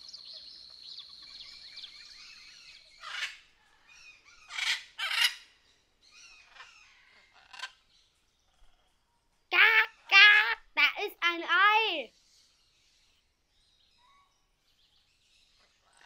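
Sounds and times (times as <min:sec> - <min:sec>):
birds chirping: 0:00.0 - 0:08.8, 0:09.5 - 0:16.0.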